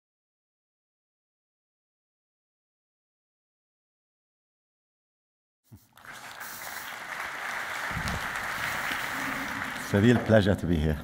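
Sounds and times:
audience applause: 0:06.0 - 0:10.6.

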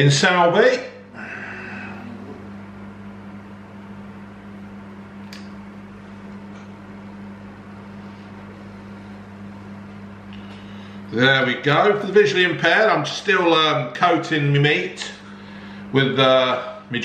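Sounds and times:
kitchen appliance humming: 0:00.0 - 0:17.0.

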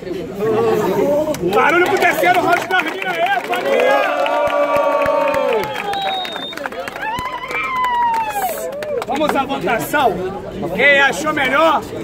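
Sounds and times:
crowd cheering and shouting: 0:01.0 - 0:09.2
handclaps: 0:01.3 - 0:09.5.

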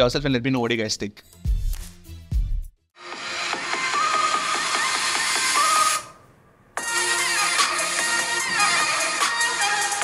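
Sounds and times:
electronic song from phone speakers: 0:01.3 - 0:06.2, 0:06.8 - 0:10.0.

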